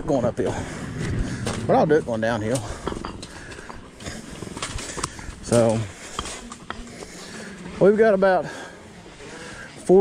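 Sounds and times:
man breathing hard: 0.4s - 1.7s, 2.6s - 7.7s.

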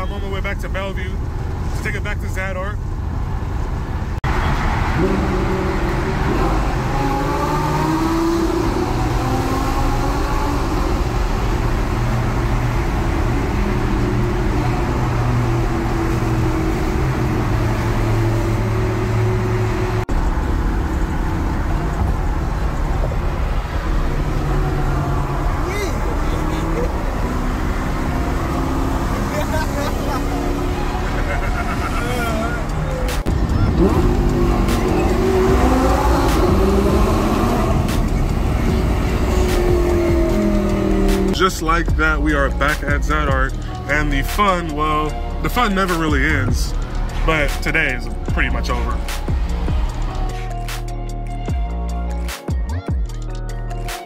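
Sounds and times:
tyre and road noise: 0.0s - 54.0s
car engine revving: 2.8s - 52.3s.

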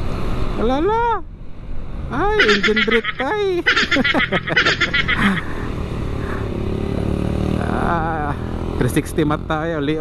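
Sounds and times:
wind and road noise: 0.0s - 10.0s
person speaking: 2.1s - 5.7s.

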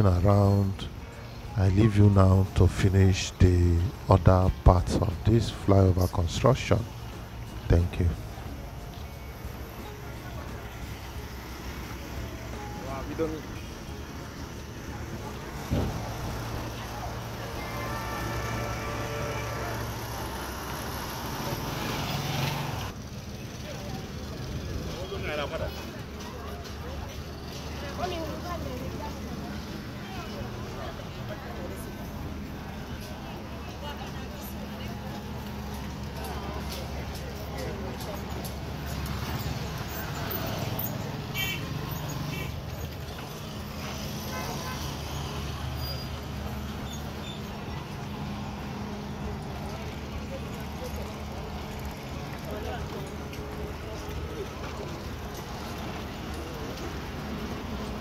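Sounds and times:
faint voices: 0.0s - 58.0s
street noise: 0.0s - 58.0s
motorcycle engines running: 3.9s - 58.0s.

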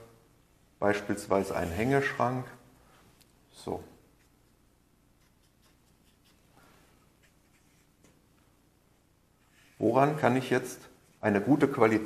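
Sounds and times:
marker drawing on paper: 4.1s - 8.2s.

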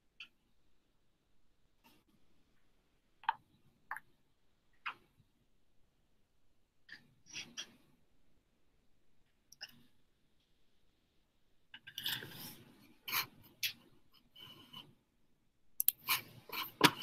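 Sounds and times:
faint clicks and taps: 1.8s - 5.3s.

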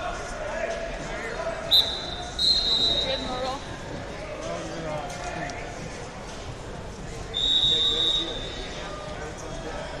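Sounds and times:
murmur of voices in a hall: 0.0s - 10.0s
referee's whistle: 1.7s - 3.4s, 7.3s - 8.6s.

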